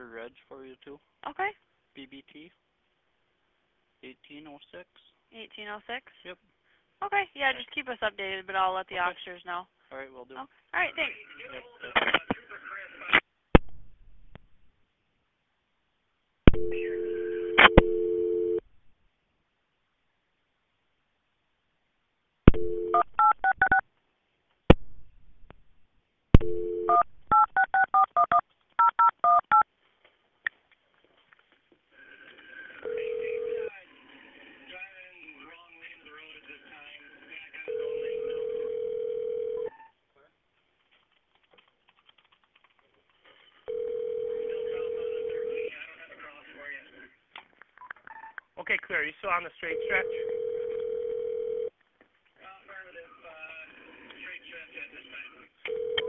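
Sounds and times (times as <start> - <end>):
dial tone: 16.6 - 18.6, 37.7 - 39.7, 43.7 - 45.6, 50.0 - 51.7, 55.7 - 56.0.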